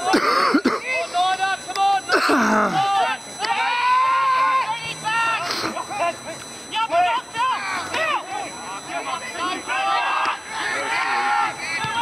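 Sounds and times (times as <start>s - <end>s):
people shouting: 0.8s - 6.1s, 6.7s - 12.0s.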